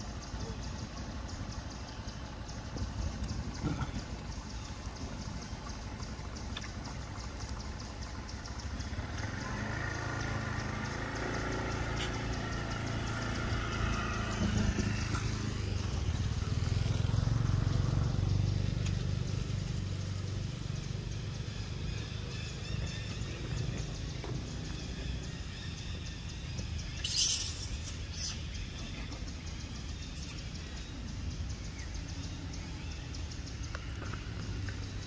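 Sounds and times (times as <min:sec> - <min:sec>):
vehicle engine running: 0:00.0 - 0:35.0.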